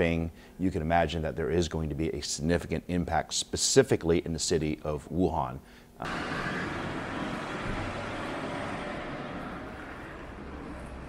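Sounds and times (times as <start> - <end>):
busy street ambience: 6.1 - 11.0.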